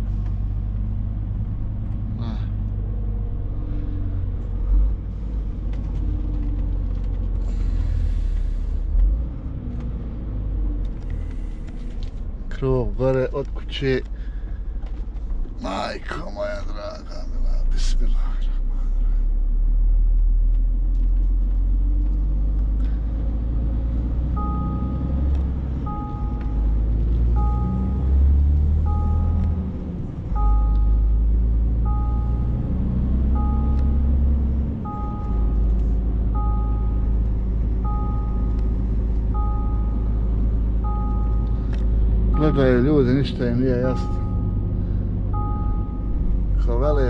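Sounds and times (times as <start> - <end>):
truck diesel engine rumble: 0.0 - 47.0
two-tone electronic warning chime: 24.4 - 25.2, 25.9 - 28.2, 28.9 - 29.6, 30.4 - 31.2, 31.8 - 32.6, 33.4 - 34.1, 34.8 - 35.6, 36.4 - 37.0, 42.3 - 42.9, 43.8 - 44.7, 45.4 - 46.2.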